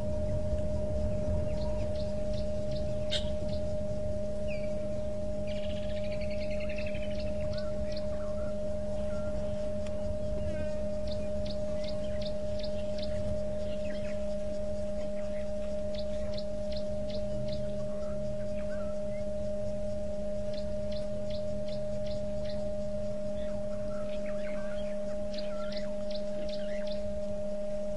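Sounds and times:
birds calling high notes: 0.0 - 27.4
steady humming tone: 0.0 - 27.9
soft bird chirps: 0.1 - 27.9.

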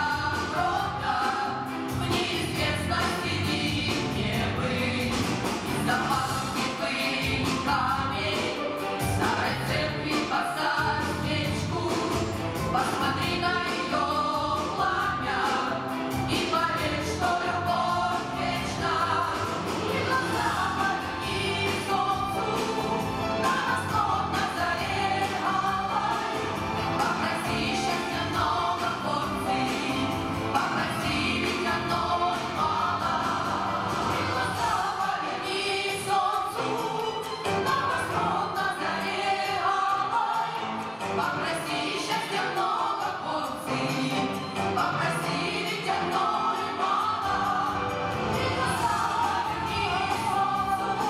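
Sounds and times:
men and women singing in chorus: 0.0 - 51.0.

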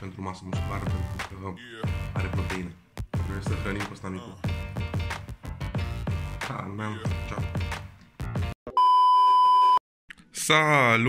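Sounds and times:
high electronic beep tone: 8.7 - 9.8.

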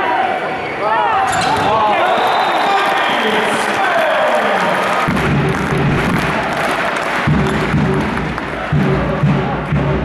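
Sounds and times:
crowd din in hall: 0.0 - 10.0.

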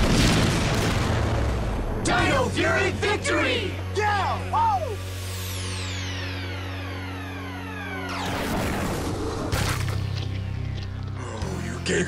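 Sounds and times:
low music drone: 0.0 - 12.0.

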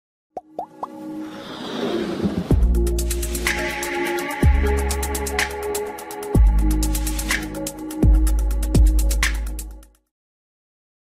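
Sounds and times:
cartoon plops gliding upward: 0.4 - 1.0
building music: 0.5 - 9.6.

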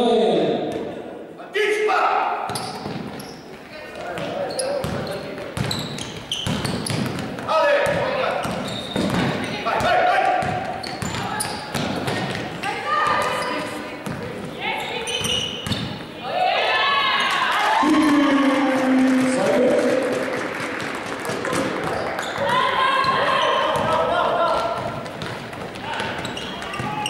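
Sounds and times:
basketball bouncing on hall floor: 2.4 - 16.2, 20.2 - 27.0
players calling out: 7.5 - 27.0.

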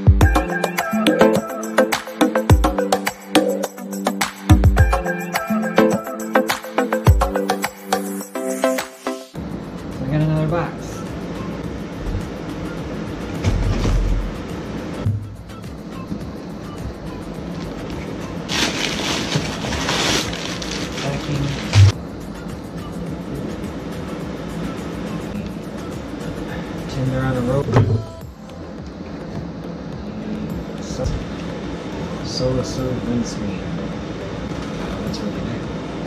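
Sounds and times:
cardboard or tape noise: 18.5 - 21.9
packaging rustling: 18.5 - 21.9.

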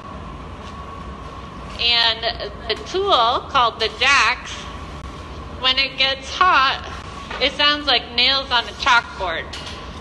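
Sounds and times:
faint high hum: 0.0 - 10.0
gas furnace roaring: 0.0 - 10.0.

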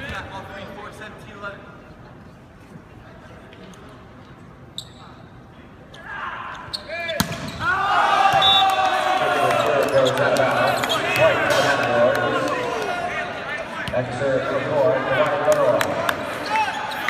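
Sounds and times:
crowd shouting and cheering: 7.5 - 17.0.

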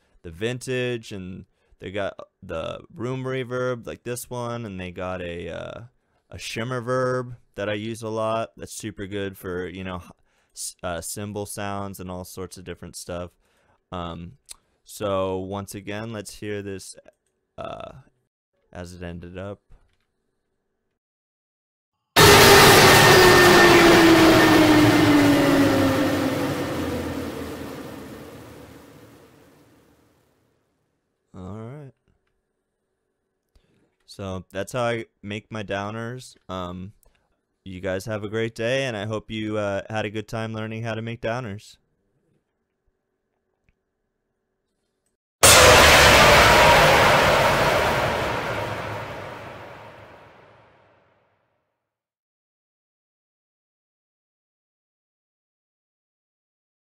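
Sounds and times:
cinematic downer hit: 22.2 - 29.5, 45.4 - 50.4
dense wash of noise: 22.2 - 29.5, 45.4 - 50.3
noisy crash over low rumble: 25.0 - 29.6, 45.4 - 50.4.

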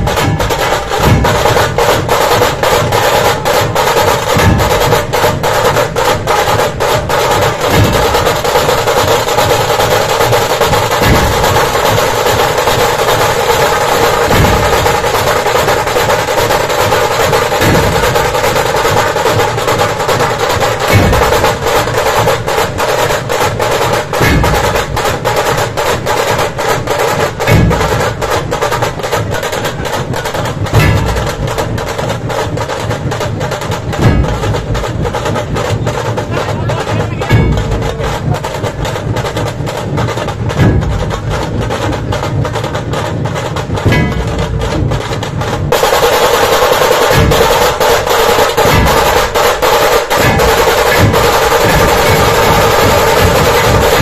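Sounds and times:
dhol drums beating: 0.0 - 54.0
heavy accented dhol strokes: 0.0 - 54.0
rapid tasha drum roll: 0.0 - 54.0.

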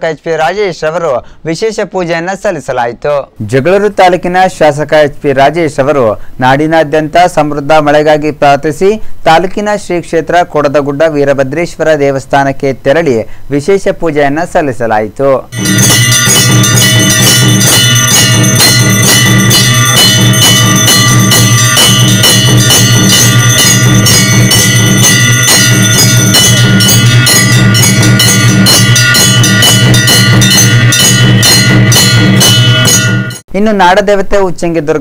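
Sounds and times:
bells ringing: 15.5 - 33.4
fast regular drumbeats: 15.5 - 33.4.

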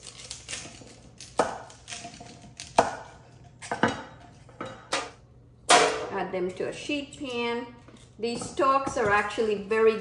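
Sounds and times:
knife chopping on wooden board: 0.5 - 3.2.

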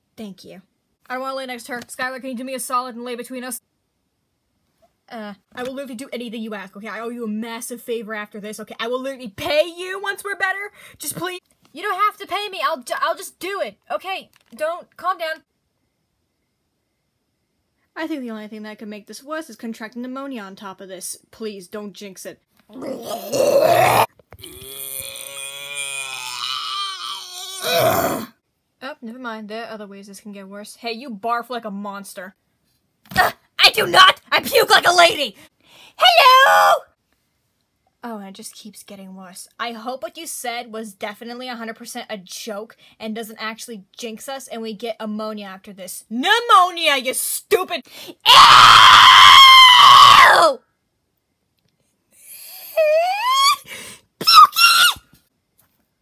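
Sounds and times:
person imitating vomiting: 22.7 - 28.3
person screaming: 22.8 - 28.3, 36.1 - 36.8, 48.3 - 50.6, 52.4 - 53.6, 54.2 - 55.0.

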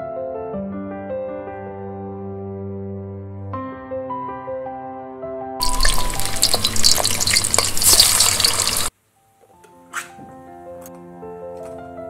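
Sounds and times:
soft background music: 0.0 - 12.0
patties sizzling: 5.6 - 8.9.

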